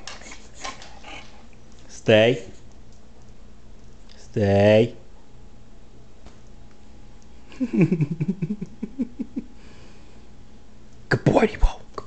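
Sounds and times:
dog claws clicking on tile: 0.0s - 1.9s.

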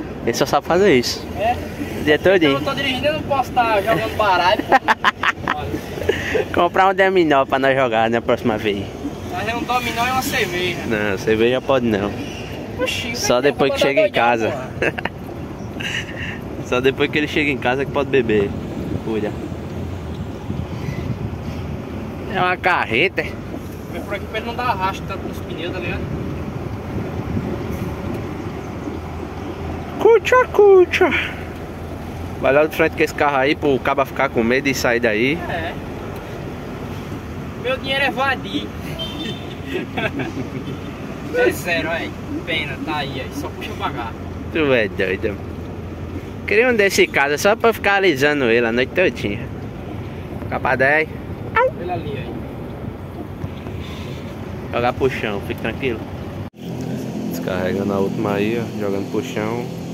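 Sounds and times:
diesel engine rumbling: 0.0s - 59.9s.

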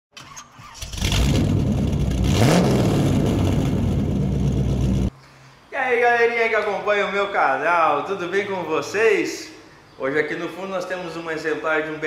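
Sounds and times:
engine starting and revving: 0.1s - 5.1s.

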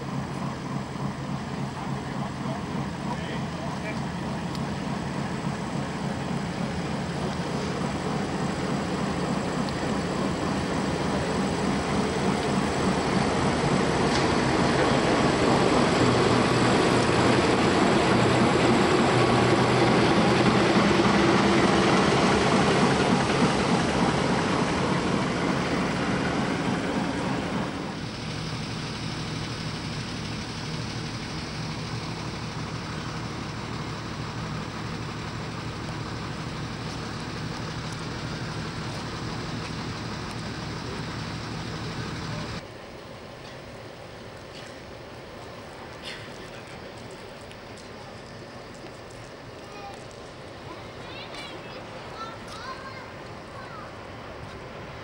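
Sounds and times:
diesel locomotive engine running: 0.0s - 55.0s
steady engine hum: 0.0s - 55.0s.

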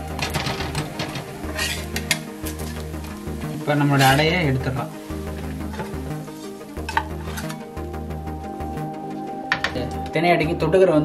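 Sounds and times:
metal utensils clinking on iron pan: 0.0s - 2.9s, 3.9s - 4.3s, 5.6s - 6.0s, 6.8s - 7.6s
background music: 0.0s - 11.0s.

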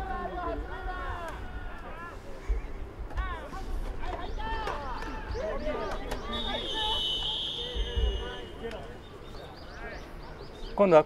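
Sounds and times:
voices shouting and calling: 0.0s - 11.0s.

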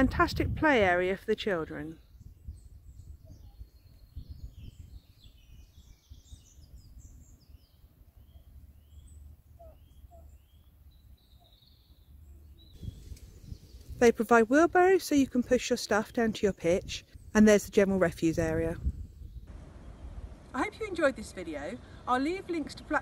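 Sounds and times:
songbirds chirping: 0.0s - 23.0s.

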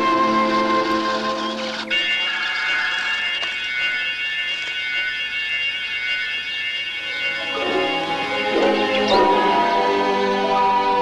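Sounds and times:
shrill horror music chord: 0.0s - 11.0s.

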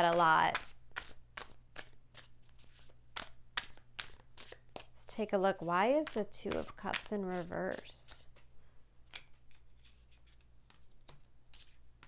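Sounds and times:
cards being shuffled: 0.5s - 4.9s, 6.1s - 8.2s, 9.1s - 11.8s.

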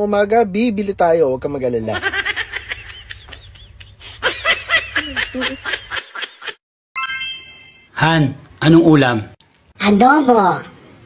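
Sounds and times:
person laughing: 1.9s - 6.6s
bright ringing chime: 7.0s - 8.0s.

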